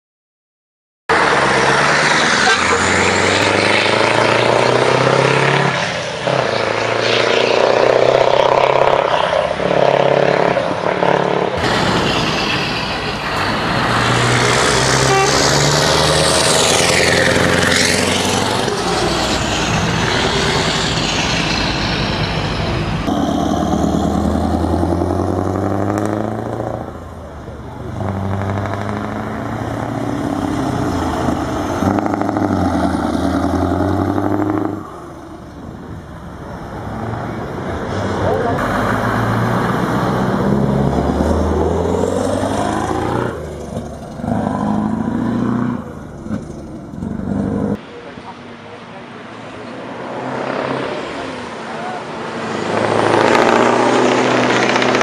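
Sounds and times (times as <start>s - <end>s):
diesel truck engine revving: 1.1s - 47.8s, 49.6s - 55.0s.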